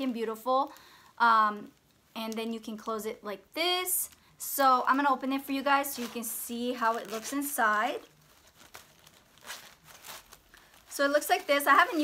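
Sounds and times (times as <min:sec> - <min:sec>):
straw handbag rustling: 0:04.7 - 0:12.0
plastic packing filler crinkling: 0:04.9 - 0:12.0.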